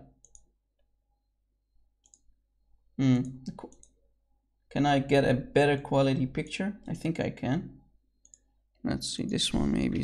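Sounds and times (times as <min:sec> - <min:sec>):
faint computer clicks: 0:02.0 - 0:02.3.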